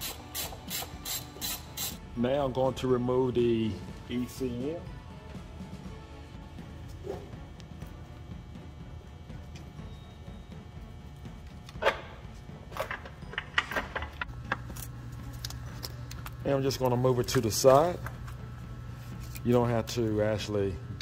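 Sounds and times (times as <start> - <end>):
faint background music: 0.0 - 21.0
low steady hum: 1.4 - 21.0.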